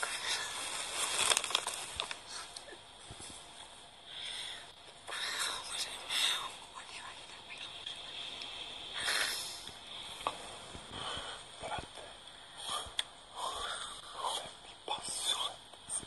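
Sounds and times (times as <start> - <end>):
faint steady hiss: 0.0 - 16.0
people whispering: 4.2 - 16.0.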